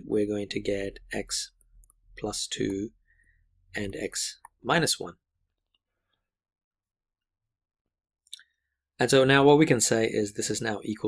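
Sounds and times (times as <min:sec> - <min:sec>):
person speaking: 0:00.0 - 0:03.0, 0:03.7 - 0:05.3.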